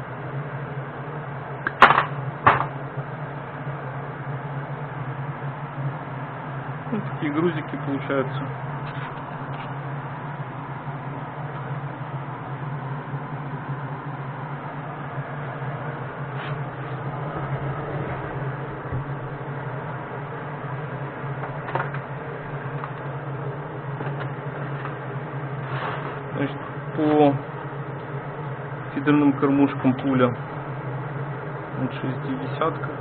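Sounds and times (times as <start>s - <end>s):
low machine hum: 0.0s - 33.0s.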